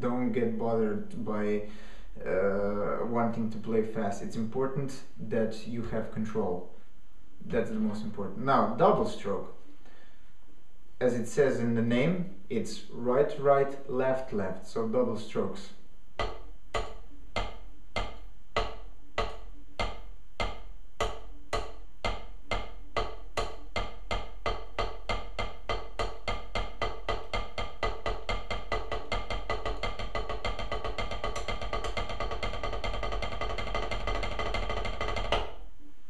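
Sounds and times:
drumsticks on practice pad: 14.7s - 35.6s.

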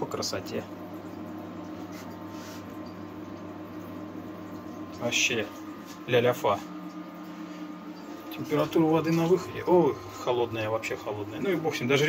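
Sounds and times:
induction hob hum: 0.0s - 12.0s.

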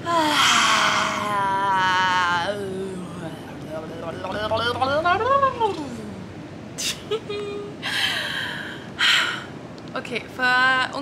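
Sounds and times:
woman laughing sigh: 0.0s - 1.5s
woman humming: 0.0s - 3.2s
sharp breath in: 0.1s - 1.5s.

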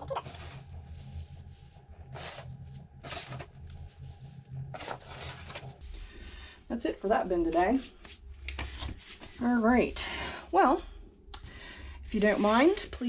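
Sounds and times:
steady low hum: 0.0s - 13.0s
shredded paper rustling: 0.2s - 5.8s.

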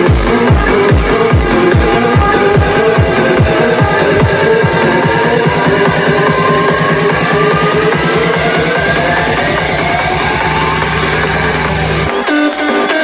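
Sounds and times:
psytrance rolling bassline: 0.0s - 12.8s
held low synth tone: 0.4s - 12.1s
rising synth sweep: 0.6s - 12.1s.

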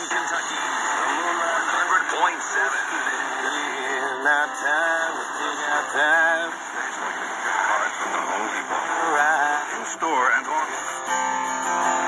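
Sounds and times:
voice from small radio speaker: 0.0s - 4.3s, 5.2s - 10.9s
radio static hiss: 0.0s - 11.2s.

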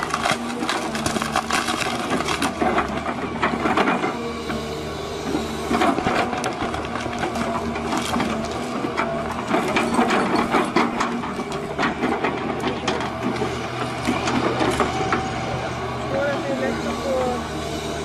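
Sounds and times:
wood and roots cracking: 0.0s - 3.9s, 5.7s - 15.3s
excavator diesel engine under load: 0.0s - 18.0s.

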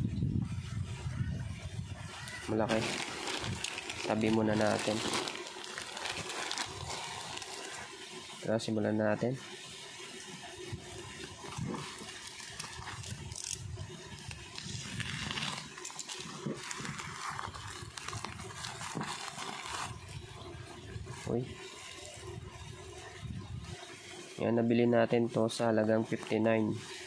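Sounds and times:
plastic film crinkling and rustling: 2.2s - 8.1s, 11.2s - 20.2s.

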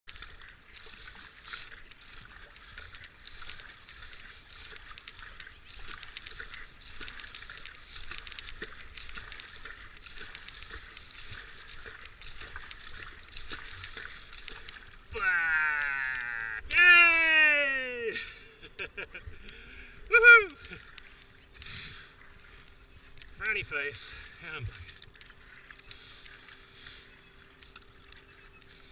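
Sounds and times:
paddle strokes splashing: 0.1s - 28.9s
water washing around hull: 0.1s - 28.9s
person crying out: 15.1s - 18.4s, 20.1s - 20.7s.

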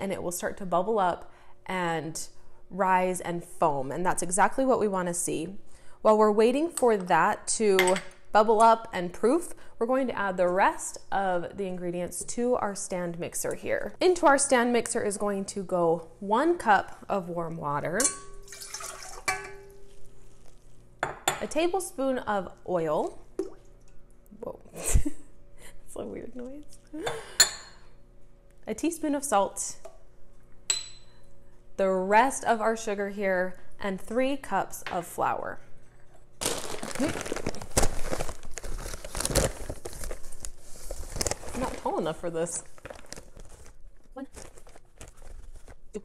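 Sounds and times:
metal bowl ringing: 17.9s - 20.0s
water pouring into metal bowl: 18.3s - 19.7s
paper sack crinkling: 36.4s - 46.0s.

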